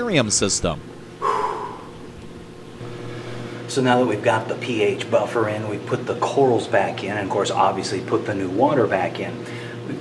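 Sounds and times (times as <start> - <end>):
steady low hum: 0.0 - 10.0
man's noisy breath: 1.2 - 2.0.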